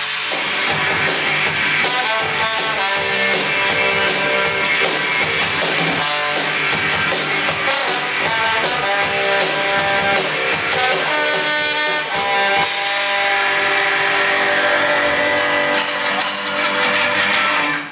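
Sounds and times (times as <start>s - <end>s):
live rock band playing: 0.0s - 17.9s.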